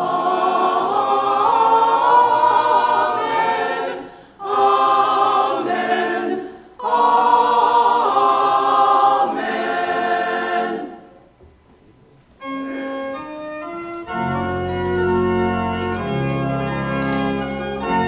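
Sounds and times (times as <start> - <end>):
church choir singing: 0.0 - 11.2, 13.1 - 18.0.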